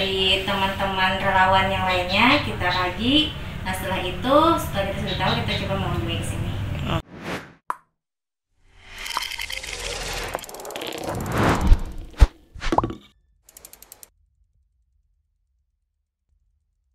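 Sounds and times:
whoosh: 0:09.8 - 0:12.8
sharp pops and hits: 0:10.2 - 0:14.0
click: 0:13.5 - 0:14.1
quick run of ticks: 0:13.5 - 0:14.1.

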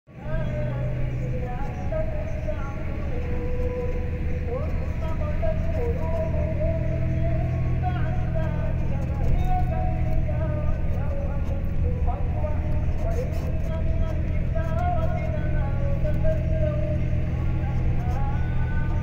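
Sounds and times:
vehicle rumble from inside: 0:00.1 - 0:19.0.

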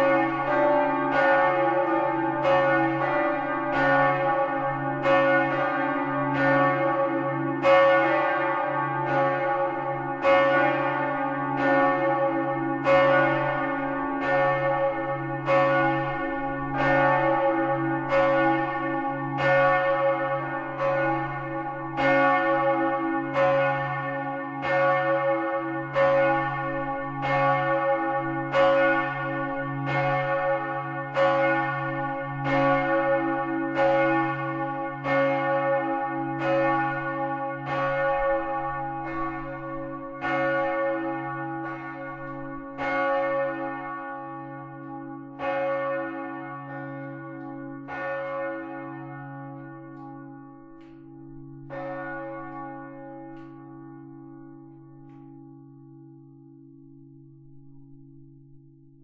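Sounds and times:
church bell ringing: 0:00.0 - 0:59.0.

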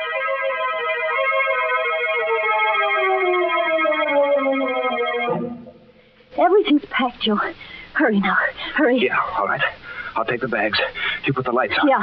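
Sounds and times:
organ chord with sliding bass: 0:00.0 - 0:06.0.

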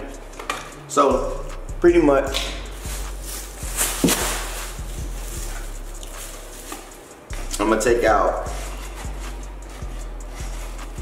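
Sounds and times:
plastic bag rustling: 0:02.7 - 0:07.3.

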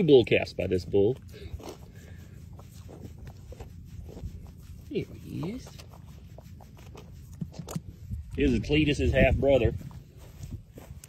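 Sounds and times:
hand rubbing calf's hair: 0:00.0 - 0:11.0.

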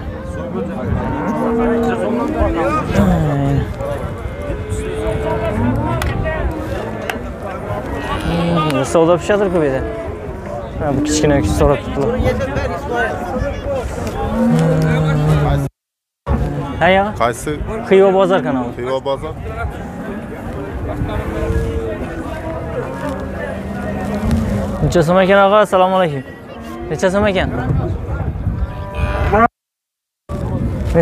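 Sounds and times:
cow mooing: 0:00.9 - 0:06.8, 0:07.8 - 0:10.2, 0:14.2 - 0:15.7, 0:21.2 - 0:24.9, 0:26.2 - 0:27.1, 0:28.7 - 0:29.5.

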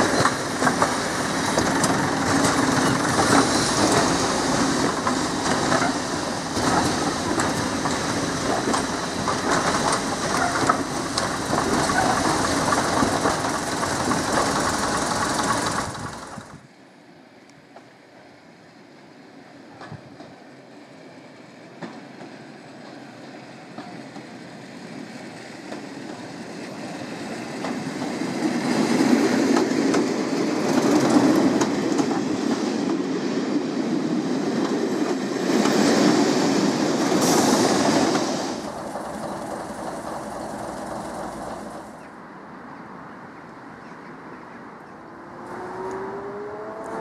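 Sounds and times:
wheels clicking over rail joints: 0:00.0 - 0:16.6, 0:37.0 - 0:42.2
diesel train passing: 0:00.0 - 0:47.0.

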